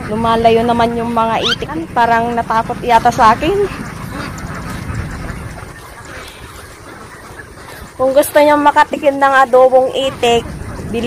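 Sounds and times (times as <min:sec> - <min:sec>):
ducks quacking: 0:00.0 - 0:11.0
wind rumbling on microphone: 0:00.0 - 0:11.0.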